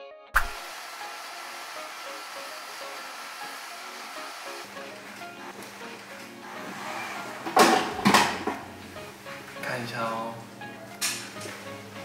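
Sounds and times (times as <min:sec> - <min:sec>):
background music: 0:00.0 - 0:12.0
hair dryer blowing: 0:00.4 - 0:05.6, 0:06.4 - 0:07.6.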